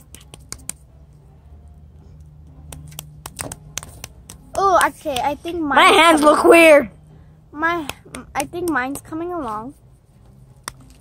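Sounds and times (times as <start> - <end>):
dough clicking between fingers: 0.0 - 0.9, 2.3 - 5.4, 7.7 - 9.0.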